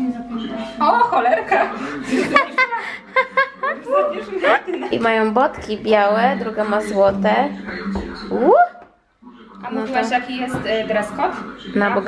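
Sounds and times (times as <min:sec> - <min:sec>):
women laughing: 0:00.8 - 0:05.0.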